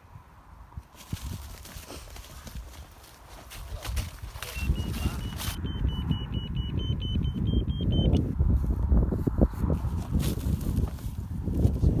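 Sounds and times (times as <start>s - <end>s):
wind rumble on microphone: 0.0s - 12.0s
electronic locator beeping: 4.5s - 8.2s
microphone handling noise: 8.1s - 12.0s.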